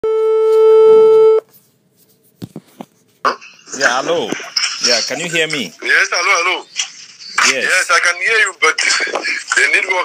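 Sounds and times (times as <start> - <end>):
steady telephone tone: 0.0 - 1.4.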